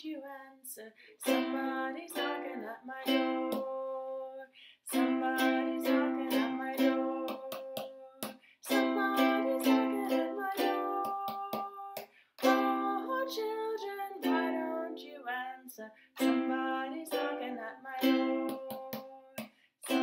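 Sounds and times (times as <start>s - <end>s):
ukulele strummed chords: 1.2s - 4.0s, 4.9s - 8.0s, 8.7s - 11.8s, 12.4s - 15.2s, 16.2s - 19.1s.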